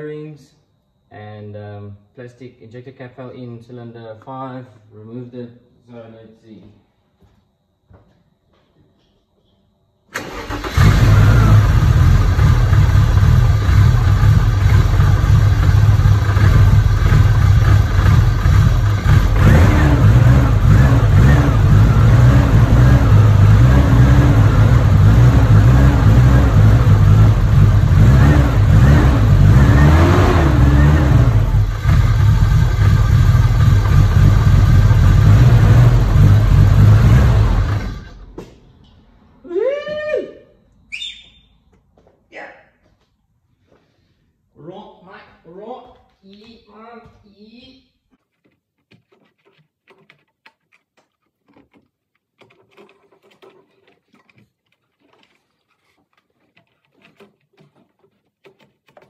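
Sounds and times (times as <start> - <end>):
engine cranking: 10.1 - 38.4, 48.2 - 59.0
car engine running: 10.8 - 38.2.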